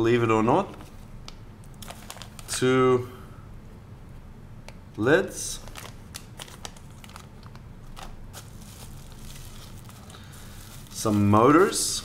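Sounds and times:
plastic bags crinkling: 0:01.7 - 0:02.5, 0:05.6 - 0:12.0.

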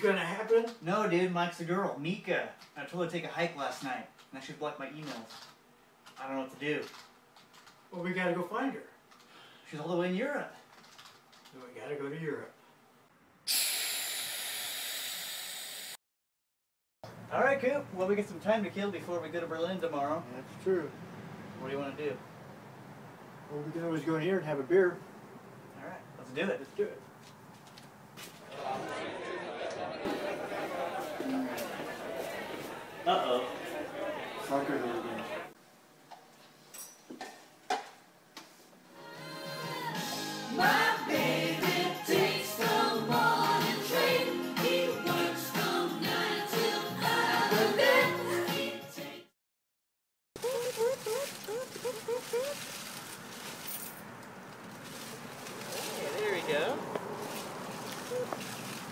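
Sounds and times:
jet airplane rushing hiss: 0:13.5 - 0:16.0
group of voices singing: 0:39.0 - 0:49.3.

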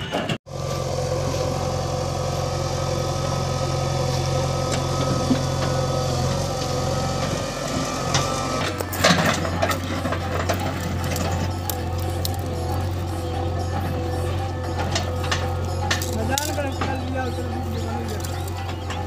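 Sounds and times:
diesel engines running: 0:00.0 - 0:19.0
metallic clanking: 0:03.3 - 0:19.0.

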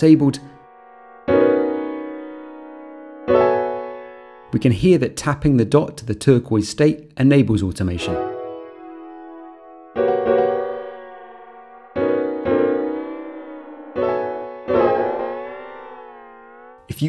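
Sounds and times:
keyboard chords with chorus effect: 0:00.0 - 0:04.6, 0:07.9 - 0:16.9.

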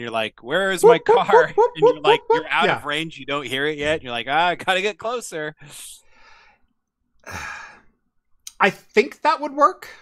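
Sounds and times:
person exhaling: 0:07.2 - 0:07.9.

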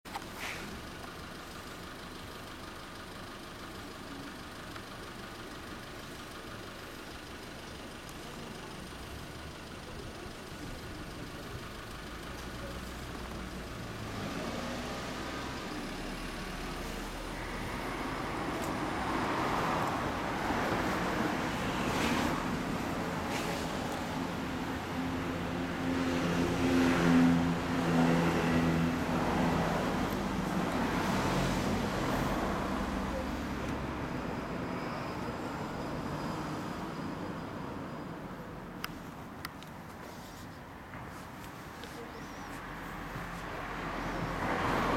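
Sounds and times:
road traffic noise: 0:00.0 - 0:44.9.

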